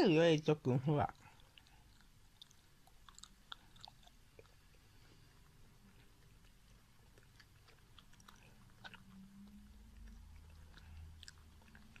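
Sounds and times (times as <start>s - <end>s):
low steady hum: 0.0s - 12.0s
cat chewing: 1.1s - 12.0s.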